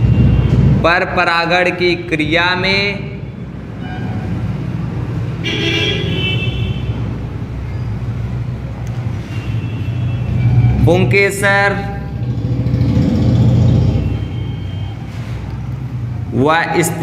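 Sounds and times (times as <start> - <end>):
road traffic rumble: 0.0 - 17.0
vehicle horn: 5.4 - 7.0.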